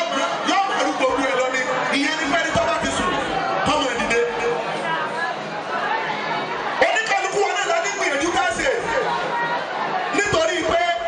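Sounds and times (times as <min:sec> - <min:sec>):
man speaking over pa system: 0:00.0 - 0:05.1, 0:06.8 - 0:09.1, 0:10.1 - 0:11.0.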